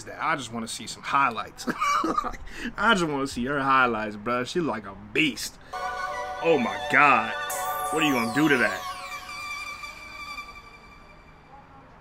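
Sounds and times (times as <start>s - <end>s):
electronic chord with sweeping tones: 5.7s - 11.4s.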